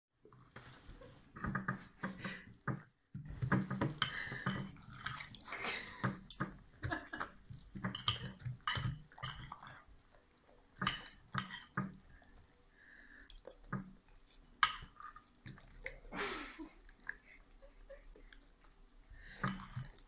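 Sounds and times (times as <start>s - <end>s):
cutlery scraping a ceramic bowl: 3.8s - 5.4s, 7.8s - 9.7s, 10.8s - 11.8s.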